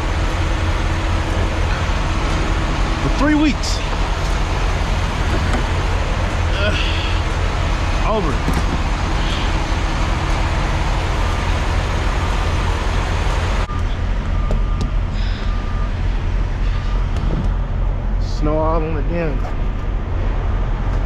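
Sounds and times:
broad rushing noise: 0.0s - 20.9s
diesel engines idling: 0.0s - 21.0s.

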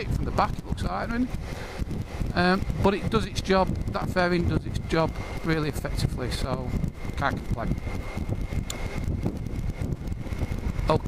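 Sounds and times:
motorcycle engine running: 0.0s - 11.0s
wind buffeting microphone: 0.0s - 11.0s.

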